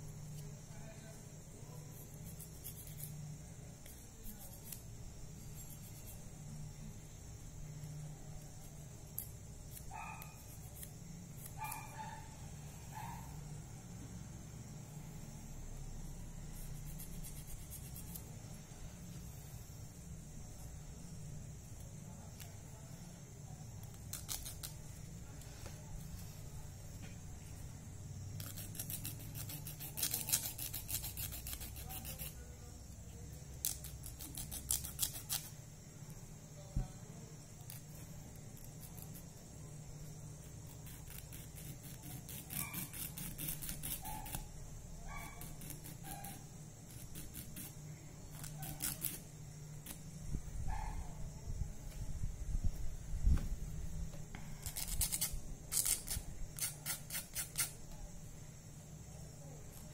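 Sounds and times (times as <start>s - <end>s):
nail file rasping on fingernail: 1.9s - 3.2s, 3.8s - 6.2s, 9.1s - 12.0s, 16.5s - 18.3s, 23.9s - 24.8s, 28.4s - 32.4s, 33.6s - 35.5s, 40.6s - 44.5s, 45.2s - 47.7s, 48.3s - 50.0s, 54.6s - 57.8s.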